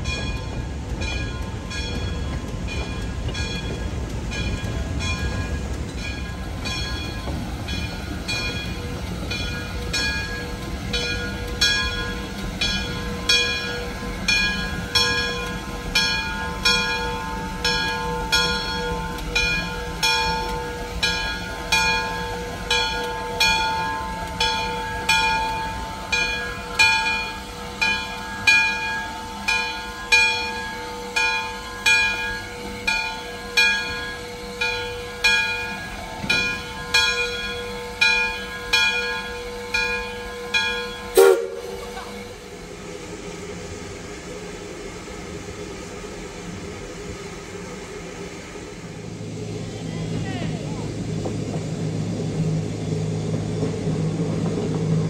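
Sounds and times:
steam locomotive bell ringing: 0:00.0 - 0:46.6
low locomotive rumble: 0:00.0 - 0:55.0.

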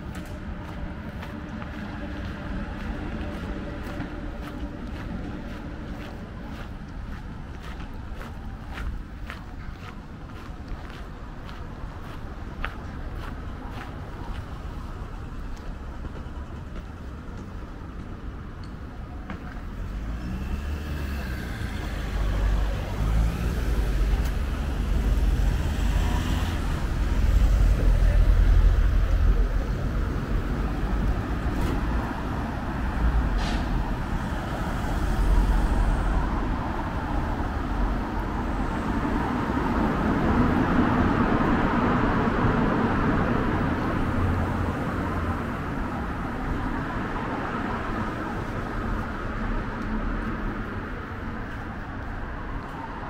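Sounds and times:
road traffic passing: 0:00.0 - 0:53.0.

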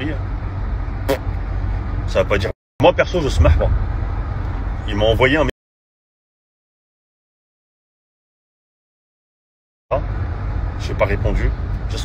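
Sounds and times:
car engine rumble: 0:00.0 - 0:05.5, 0:09.9 - 0:12.0
car road noise: 0:00.0 - 0:05.5, 0:09.9 - 0:12.0.

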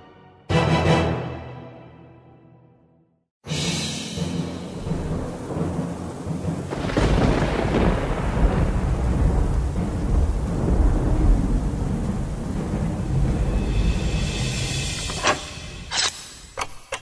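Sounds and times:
rain hissing: 0:03.7 - 0:15.8
thunderclap rumbling: 0:04.4 - 0:15.2.

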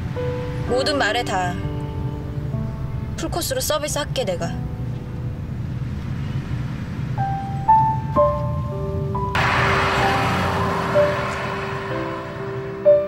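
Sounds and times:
soft piano music: 0:00.0 - 0:09.4
car rumbling on the road: 0:09.4 - 0:13.0.

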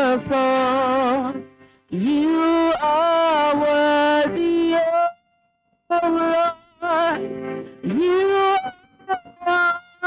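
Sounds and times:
woman singing worship song: 0:00.0 - 0:05.2, 0:05.9 - 0:10.0.

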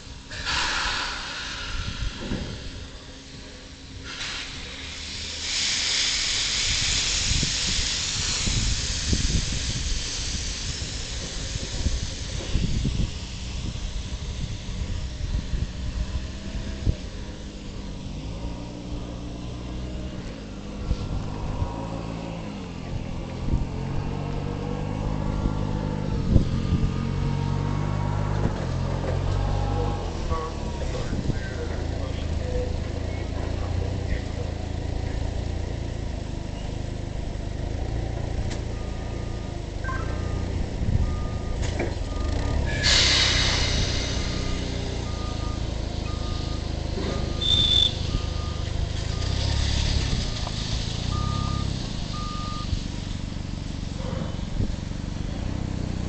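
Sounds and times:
low engine rumble: 0:00.0 - 0:56.0
short burst of hiss: 0:00.3 - 0:02.9, 0:04.0 - 0:13.3, 0:42.7 - 0:45.0
electronic reversing beeper: 0:38.7 - 0:52.8.

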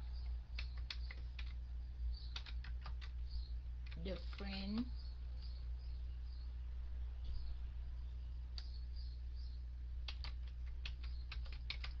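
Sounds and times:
steady low hum: 0:00.0 - 0:12.0
computer keyboard typing: 0:00.2 - 0:01.6, 0:02.2 - 0:03.2, 0:03.8 - 0:04.9, 0:10.0 - 0:12.0.

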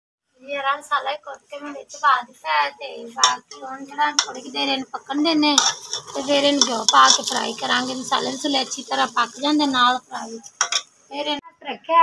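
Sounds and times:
metal ladle scraping pot: 0:03.2 - 0:10.9
sharp metal clink: 0:10.6 - 0:10.9.

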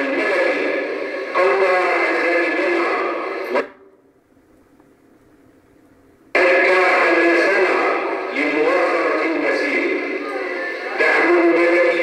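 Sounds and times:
man chanting into a microphone: 0:06.4 - 0:12.0.

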